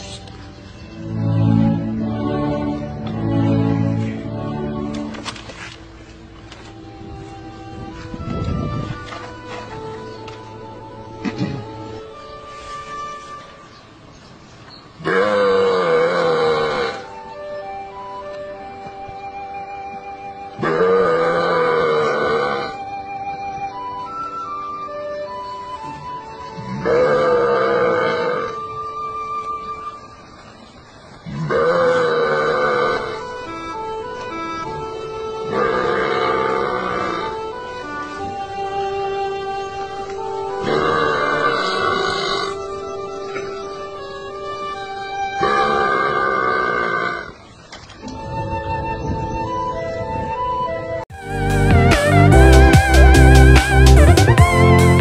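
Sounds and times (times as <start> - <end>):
flute-like tones: 0.0 - 14.0, 15.9 - 30.4, 32.5 - 46.2, 48.0 - 55.0
background music: 0.0 - 30.7, 31.3 - 47.1, 48.0 - 55.0
long low moo-like call: 15.0 - 18.4, 19.3 - 23.5, 25.8 - 29.8, 31.2 - 33.8, 34.6 - 47.4
man making cow call: 20.6 - 22.9, 35.5 - 37.4, 40.5 - 42.8.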